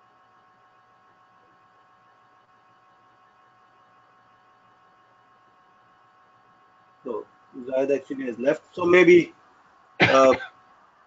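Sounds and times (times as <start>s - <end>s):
faint hum with whine: 0.0s - 11.0s
low hiss: 5.6s - 10.9s.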